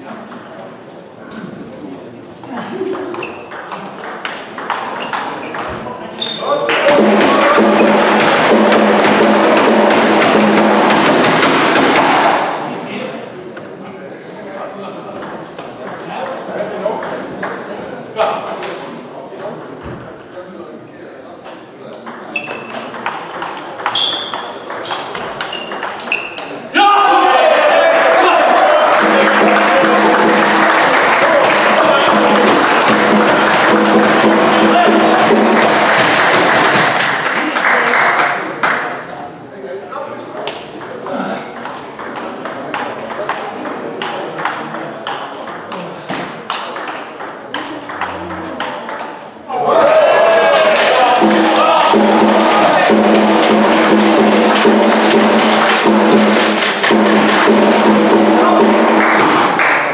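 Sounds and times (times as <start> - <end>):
loud sustained din: 28.2 - 35.8.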